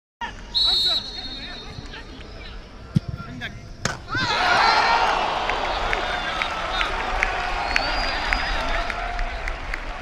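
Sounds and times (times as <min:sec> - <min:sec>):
stadium background noise: 0:00.2 - 0:10.0
referee's whistle blast: 0:00.5 - 0:01.9.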